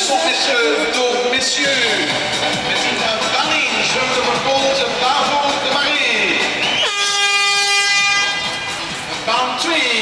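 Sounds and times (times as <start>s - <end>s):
held horn-like tone: 6.8s - 8.8s.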